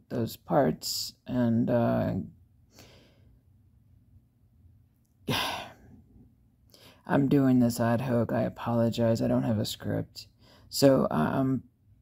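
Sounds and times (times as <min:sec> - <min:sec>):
faint breath in: 0:02.7 - 0:03.4, 0:06.7 - 0:07.0, 0:10.4 - 0:10.7
woman sighing: 0:05.3 - 0:06.0.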